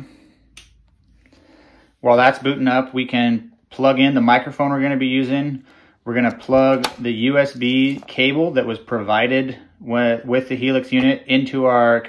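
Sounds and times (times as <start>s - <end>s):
power switch clicking: 6.3s - 7.1s.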